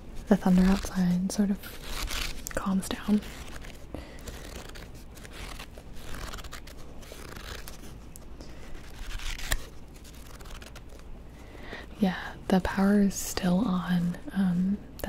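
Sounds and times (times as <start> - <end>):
book pages rustling: 0.1 - 11.1
paper crackles: 0.2 - 11.1.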